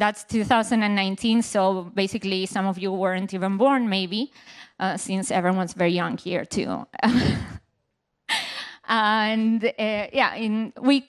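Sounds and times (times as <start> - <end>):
woman laughing breathily: 7.0 - 7.6, 8.3 - 8.8.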